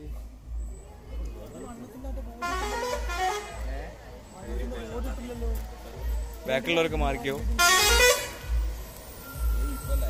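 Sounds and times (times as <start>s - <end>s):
people's voices: 0.0s - 10.0s
vehicle rumble: 0.0s - 10.0s.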